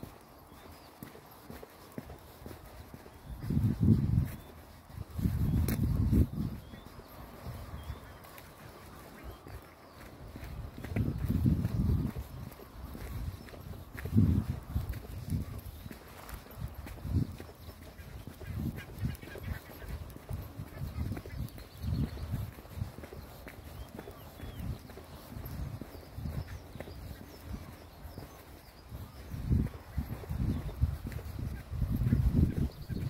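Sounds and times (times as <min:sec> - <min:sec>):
footsteps on dirt path: 0:00.0 - 0:33.0.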